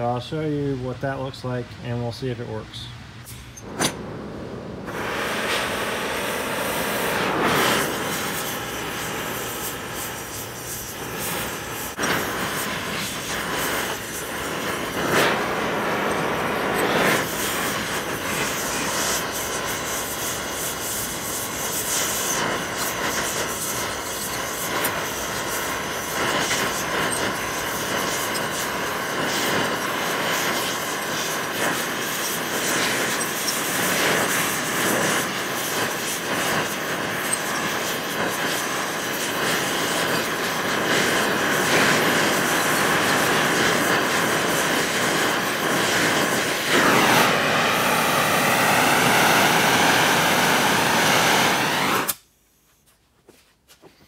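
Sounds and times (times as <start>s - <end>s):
torch flame hissing: 3.2s - 52.2s.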